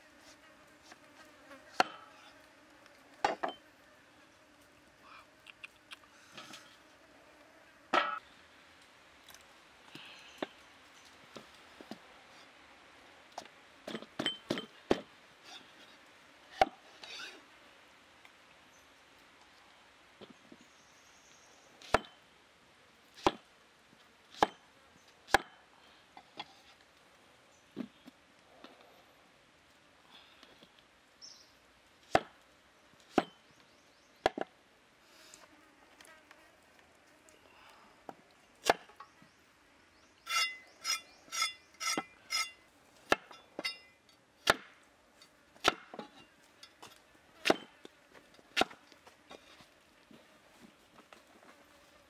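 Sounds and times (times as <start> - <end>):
cleaver chopping into wooden block: 21.9 - 22.2, 23.2 - 23.4, 32.1 - 32.4, 44.4 - 44.8, 45.6 - 46.1, 47.4 - 47.7.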